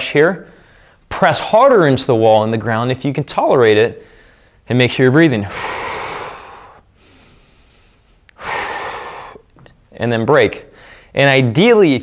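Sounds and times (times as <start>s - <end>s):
man breathing audibly: 0.5s - 1.1s, 4.0s - 4.6s, 5.5s - 9.8s, 10.7s - 11.2s.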